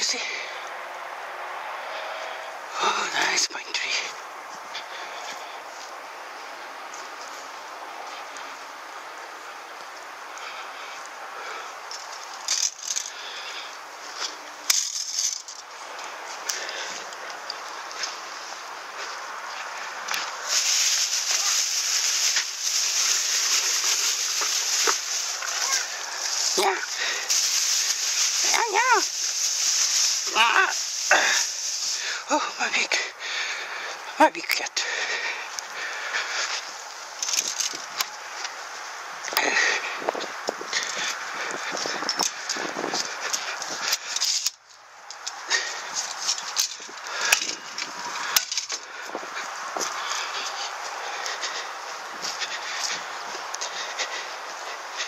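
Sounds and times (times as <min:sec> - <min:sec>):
leaves rustling: 0:00.0 - 0:55.0
metal rake scraping soil: 0:14.1 - 0:16.8, 0:19.8 - 0:32.8, 0:37.2 - 0:38.5
wavering voice-like sounds: 0:25.3 - 0:27.3, 0:30.2 - 0:33.1.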